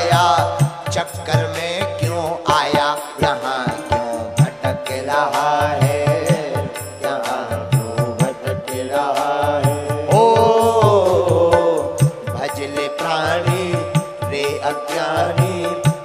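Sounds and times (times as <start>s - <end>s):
man singing devotional song: 0.0s - 16.0s
percussion beat: 0.0s - 16.0s.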